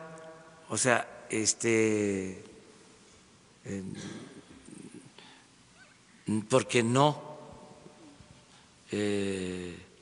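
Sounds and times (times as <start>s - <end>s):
man speaking into a microphone: 0.0s - 2.6s, 3.6s - 4.8s, 6.2s - 7.8s, 8.9s - 10.0s.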